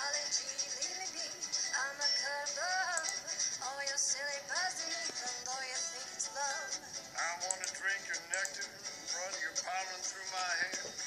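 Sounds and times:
song through laptop speakers: 0.0s - 11.0s.

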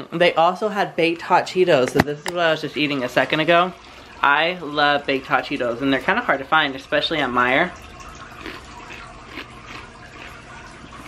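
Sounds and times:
person chewing crunchy snack: 8.3s - 10.5s.

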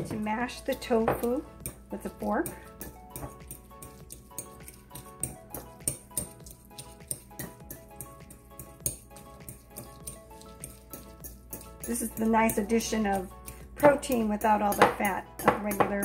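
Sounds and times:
background music: 0.0s - 16.0s
fork clicking against glass bowl: 2.8s - 12.6s.

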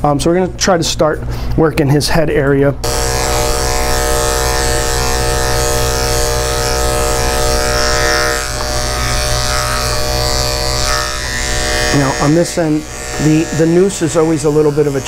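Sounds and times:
electric clipper buzzing: 2.8s - 15.0s.

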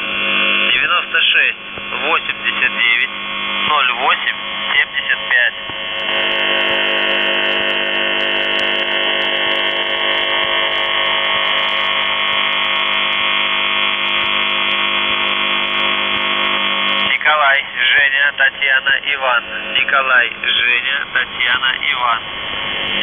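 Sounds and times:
harsh steady radio buzz: 0.0s - 23.0s.

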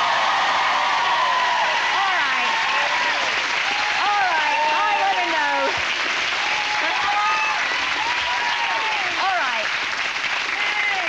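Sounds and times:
audience applauding: 0.0s - 11.0s
voices: 4.0s - 5.8s.

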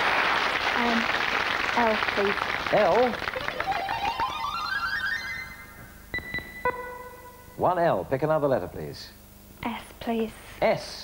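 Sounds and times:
rising synthesized notes: 3.4s - 7.9s
short pinging tones: 5.3s - 7.5s.

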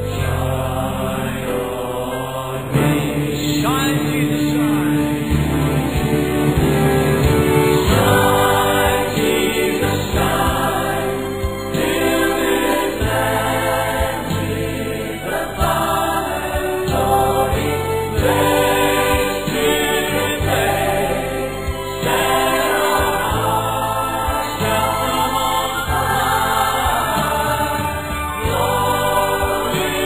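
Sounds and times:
choir singing sustained chords: 0.0s - 30.0s
steady low beat: 2.8s - 25.0s.

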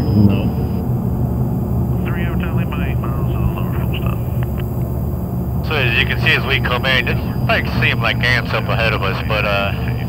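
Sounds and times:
faint voices: 0.0s - 0.8s, 1.8s - 10.0s
low drone of engines: 0.0s - 10.0s.

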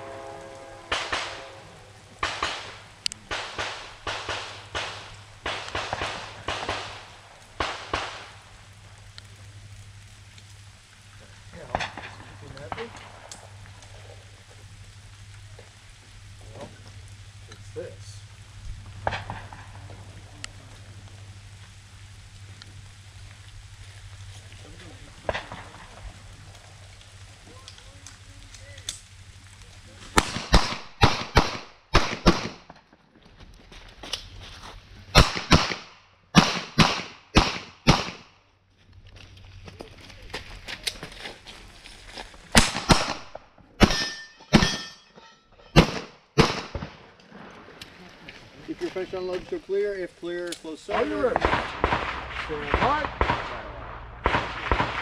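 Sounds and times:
pistol shots: 0.9s - 1.5s, 2.2s - 8.4s, 30.2s - 32.7s, 35.1s - 38.3s, 42.6s - 44.9s, 45.8s - 47.0s, 51.3s - 55.0s.

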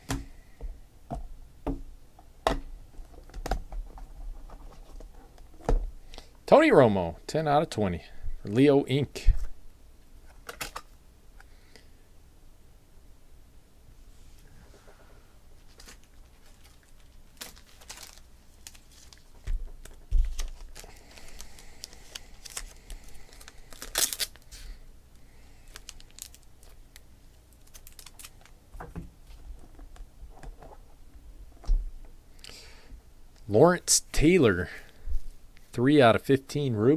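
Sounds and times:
cards clicking and rustling: 10.3s - 10.9s, 15.7s - 24.7s, 27.6s - 28.6s
packaging crinkling and tearing: 15.7s - 24.7s, 25.6s - 28.6s.

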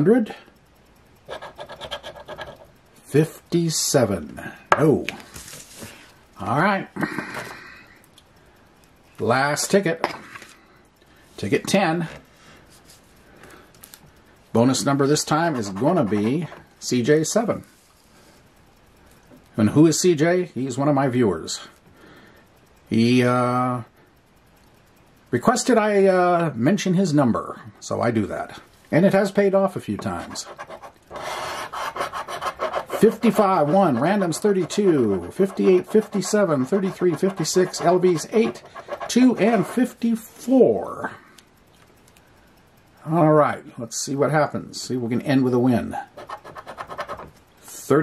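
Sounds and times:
coin scraping lottery ticket: 1.3s - 2.7s, 14.7s - 16.6s, 30.0s - 40.0s, 46.1s - 47.3s
faint handling ticks: 8.0s - 20.1s, 24.5s - 43.3s.

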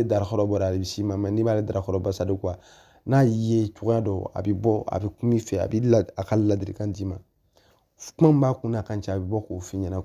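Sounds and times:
man speaking: 0.0s - 7.3s, 8.0s - 10.0s.

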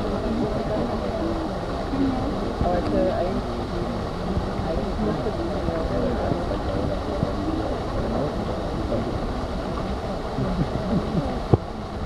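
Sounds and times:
faint indistinct voices: 0.0s - 12.0s
wind on microphone: 0.0s - 12.0s.

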